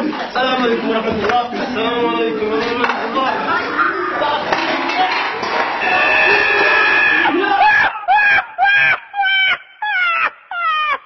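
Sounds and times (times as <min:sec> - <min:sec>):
people screaming in panic: 0:05.8 - 0:11.0.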